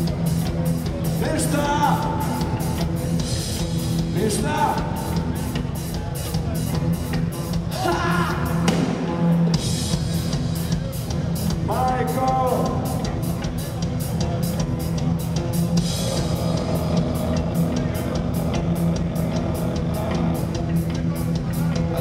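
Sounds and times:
bass guitar: 0.0s - 22.0s
distorted electric guitars: 0.0s - 22.0s
drum kit beat: 0.0s - 22.0s.

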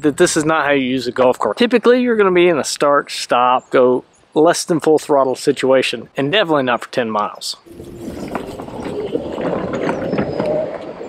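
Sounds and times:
golf cart driving past: 7.7s - 11.0s.

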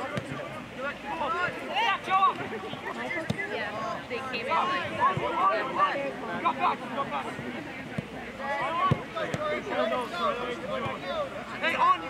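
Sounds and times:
voices calling and shouting: 0.0s - 12.0s.

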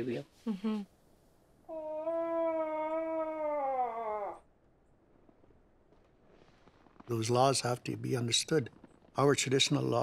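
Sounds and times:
voiced moose call through cone: 1.7s - 4.4s.

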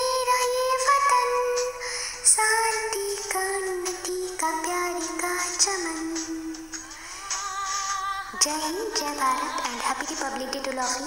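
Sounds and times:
karaoke backing track: 0.0s - 11.0s.

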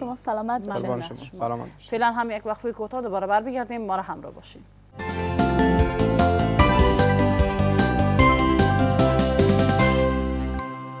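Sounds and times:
chiming jingle music: 5.1s - 11.0s.

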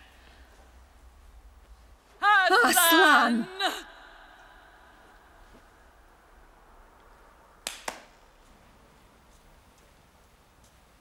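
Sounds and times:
hand claps: 7.6s - 8.2s.

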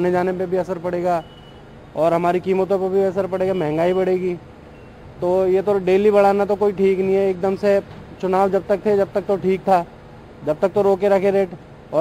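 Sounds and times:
man speaking: 0.0s - 1.3s, 2.0s - 4.4s, 5.2s - 12.0s.

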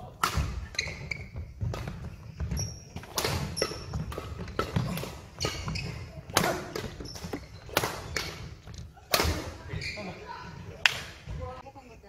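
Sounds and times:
rackets hitting shuttlecock: 0.0s - 9.9s.

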